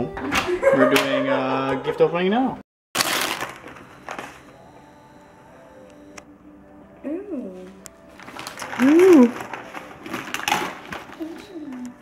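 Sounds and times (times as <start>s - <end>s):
wrapping paper tearing and crumpling: 3.0s - 3.8s, 8.2s - 12.0s.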